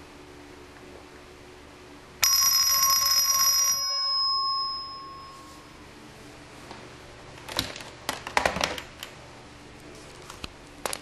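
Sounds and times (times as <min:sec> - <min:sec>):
electric alarm bell ringing: 0:02.2 - 0:05.8
gong ringing on: 0:02.2 - 0:05.9.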